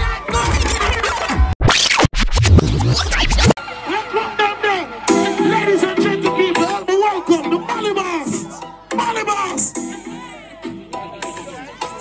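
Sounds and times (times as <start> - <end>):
record scratch effect: 0.4 - 3.6
heavy bass beat: 1.6 - 3.6
live music with singing: 5.1 - 12.0.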